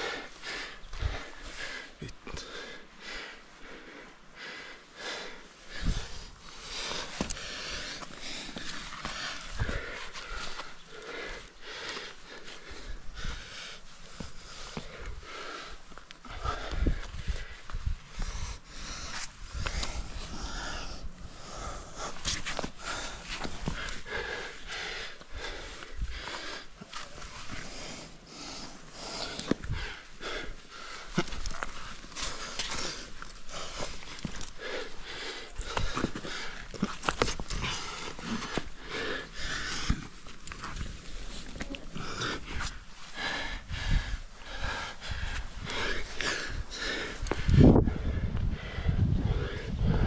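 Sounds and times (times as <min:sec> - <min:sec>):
hard rhythmic breathing: 0:00.0 - 0:50.0
gear clicking on rock: 0:30.8 - 0:42.7.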